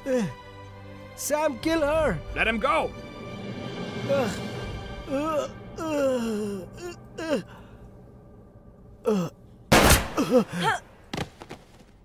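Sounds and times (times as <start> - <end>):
person groaning and moaning: 0.0 - 0.4, 4.0 - 7.8, 9.0 - 9.4, 10.2 - 10.8
faint background music: 0.0 - 10.8.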